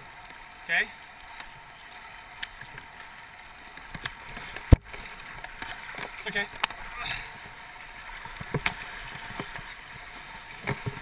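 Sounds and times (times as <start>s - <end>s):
rushing river water: 0.0s - 11.0s
paddle splashes: 0.6s - 11.0s.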